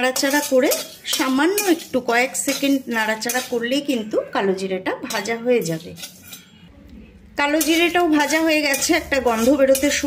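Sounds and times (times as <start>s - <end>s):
woman speaking: 0.0s - 6.0s, 7.3s - 10.0s
metal spatula scraping pan: 0.0s - 6.7s, 7.4s - 10.0s.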